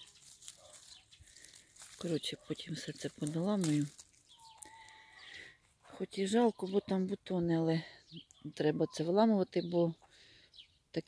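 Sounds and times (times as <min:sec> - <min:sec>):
leaves rustling: 0:00.0 - 0:05.5
stems snapping clicks: 0:02.6 - 0:04.7.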